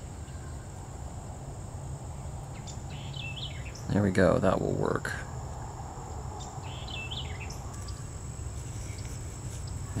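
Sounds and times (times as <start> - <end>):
bird chirps: 2.2 - 4.0, 6.4 - 8.2.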